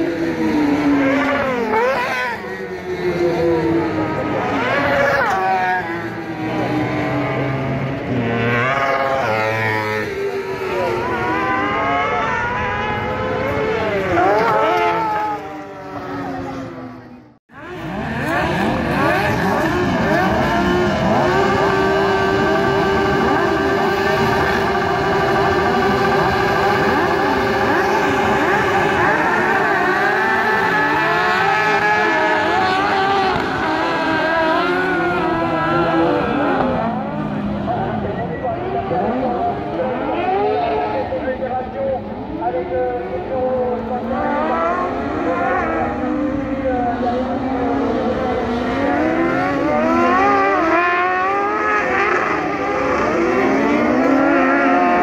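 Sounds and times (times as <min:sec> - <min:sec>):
buggy engines revving: 0:00.0 - 0:55.0.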